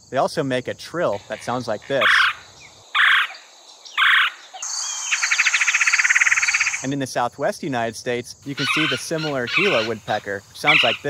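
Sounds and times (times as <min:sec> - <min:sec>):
high insect buzz: 0:00.4 - 0:07.1
woodpecker calling: 0:01.1 - 0:06.9, 0:08.5 - 0:11.0.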